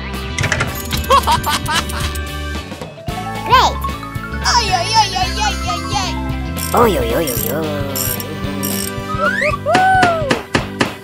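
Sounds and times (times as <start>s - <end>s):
background music: 0.0s - 11.0s
ratchet clicking: 6.6s - 9.0s.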